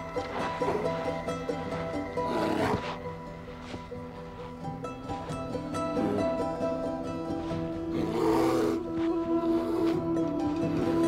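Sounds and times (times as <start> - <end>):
polar bear roaring: 0.0 - 3.1, 5.8 - 11.0
background music with held notes: 0.0 - 11.0.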